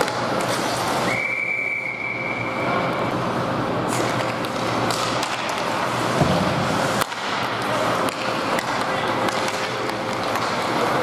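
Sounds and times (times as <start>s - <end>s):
rink background noise: 0.0s - 11.0s.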